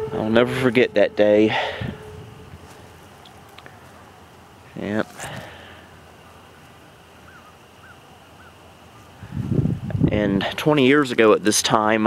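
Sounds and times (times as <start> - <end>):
low rumbling on microphone: 0.0 - 5.5, 9.2 - 10.6
faint bird calls: 1.3 - 9.4.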